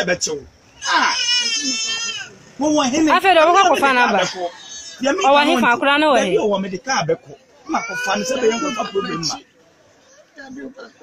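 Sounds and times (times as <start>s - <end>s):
high-pitched wailing cry: 0.8s - 2.3s.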